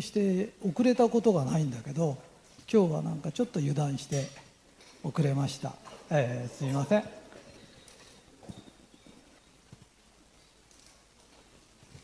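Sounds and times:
man speaking: 0.0s - 4.4s, 5.0s - 7.4s.

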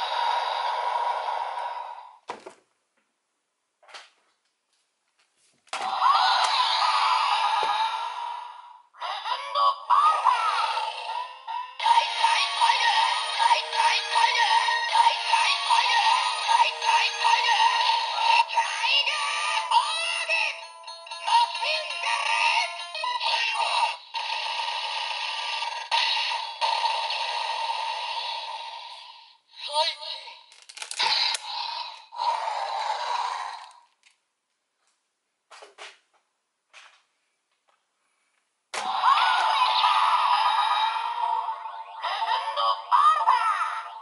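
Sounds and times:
tinny toy electronic music with vocals: 5.8s - 33.8s, 38.8s - 44.0s.

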